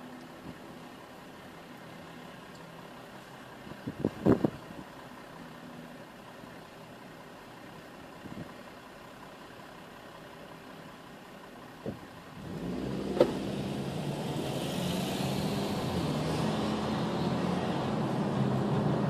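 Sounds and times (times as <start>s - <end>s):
car engine idling: 0.0s - 14.1s
road noise: 0.0s - 19.0s
car accelerating: 12.2s - 19.0s.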